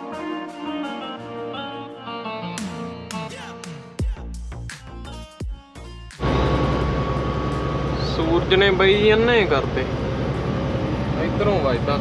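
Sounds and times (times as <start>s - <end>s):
truck engine and road drone: 6.2s - 12.0s
man talking: 8.0s - 10.0s, 11.2s - 12.0s.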